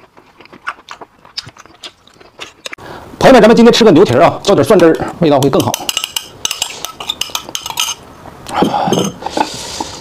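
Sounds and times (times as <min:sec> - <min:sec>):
metal spoon clinking on glass bowl: 0:05.4 - 0:08.0.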